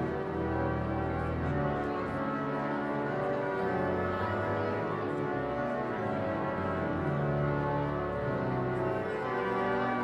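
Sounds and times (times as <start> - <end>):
pipe organ sustained chords: 0.0 - 10.0.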